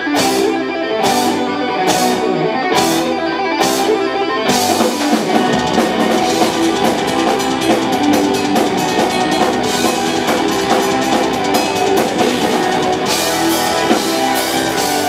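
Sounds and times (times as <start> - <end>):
distorted electric guitars: 0.0 - 15.0
metal band playing live: 0.0 - 15.0
fast dense drumming: 4.6 - 15.0.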